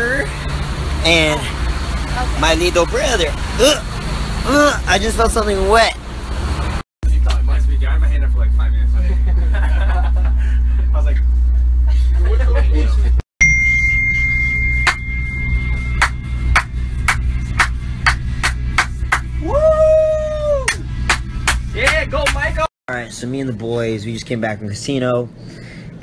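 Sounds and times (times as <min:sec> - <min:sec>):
bus engine rumbling: 0:00.0 - 0:13.2, 0:14.1 - 0:26.0
steady high tone: 0:13.4 - 0:18.0.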